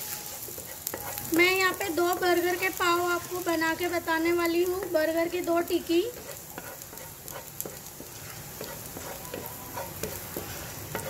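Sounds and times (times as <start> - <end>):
wooden spatula scraping pan: 0.0 - 2.4, 6.1 - 11.0
garlic sizzling in hot oil: 0.0 - 11.0.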